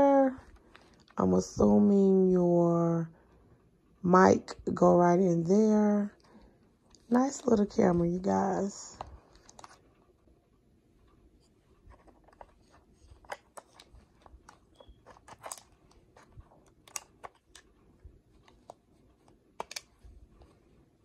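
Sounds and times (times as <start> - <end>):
plastic camera clicks and taps: 19.6 - 20.0.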